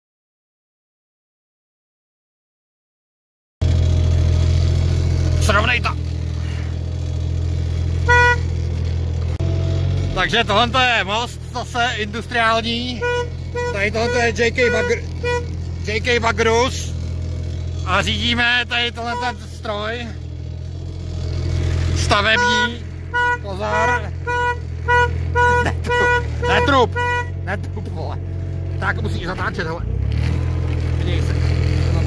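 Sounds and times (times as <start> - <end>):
dumper engine running: 3.6 - 32.0
short horn toot: 7.9 - 8.9, 12.0 - 16.3, 19.0 - 19.6, 21.9 - 27.8.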